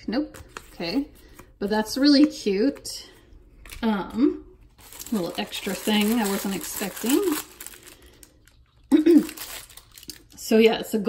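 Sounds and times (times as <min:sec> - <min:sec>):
tissue paper rustling: 0:04.7 - 0:08.3, 0:09.1 - 0:10.1
woman humming or clearing throat: 0:08.9 - 0:09.4.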